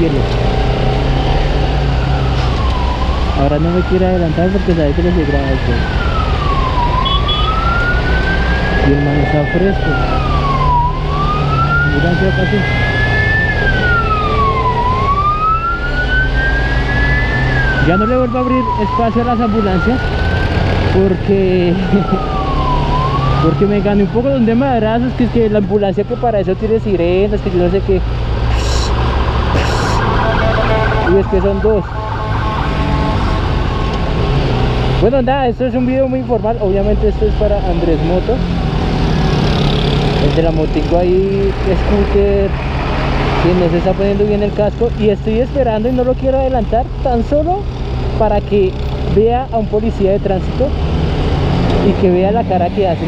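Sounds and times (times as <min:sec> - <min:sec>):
ambulance siren wailing: 0:00.0 - 0:46.6
low rumble of traffic: 0:00.0 - 0:53.0
road noise: 0:00.0 - 0:53.0
wind: 0:00.0 - 0:53.0.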